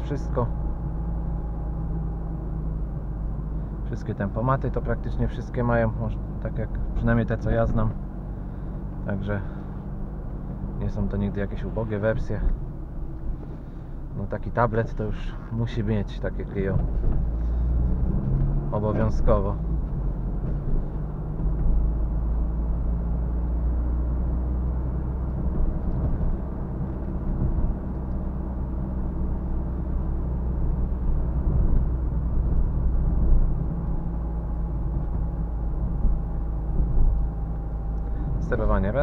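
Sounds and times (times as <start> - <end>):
car engine drone: 0.0 - 39.0
tyre and road rumble: 0.0 - 39.0.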